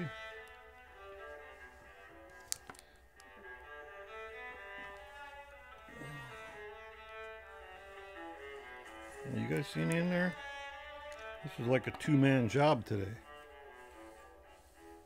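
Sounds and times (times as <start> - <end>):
bowed strings holding long notes: 0.0 - 15.0.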